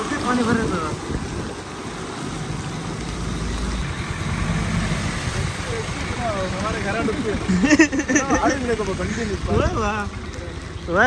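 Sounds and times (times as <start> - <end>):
heavy rain falling: 0.0 - 11.0
vehicle engine idling: 0.0 - 11.0.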